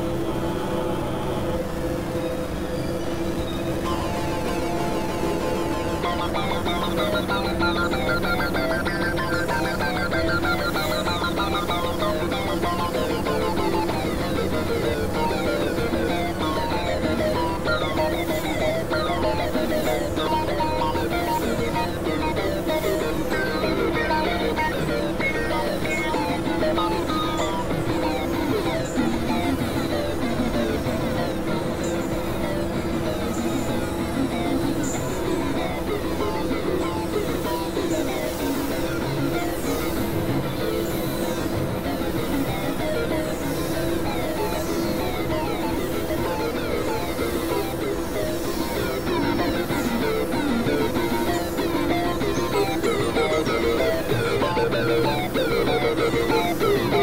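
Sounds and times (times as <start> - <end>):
low synthesizer drones: 0.0 - 57.0.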